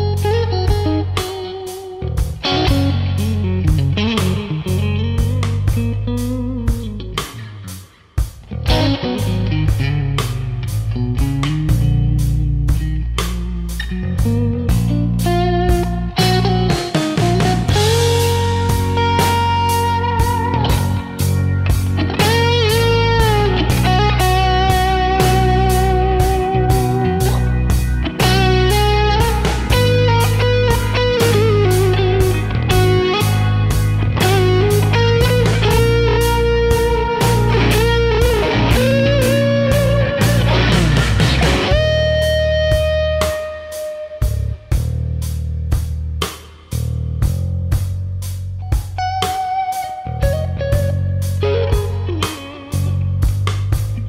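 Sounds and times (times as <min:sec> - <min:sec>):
electric guitar lead lines: 0:00.0 - 0:46.1, 0:48.6 - 0:54.0
backing track with drums: 0:00.0 - 0:54.0.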